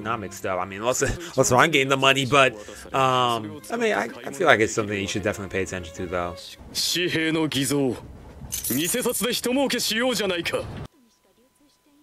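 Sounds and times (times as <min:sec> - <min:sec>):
character speaking: 0:00.7 - 0:05.5.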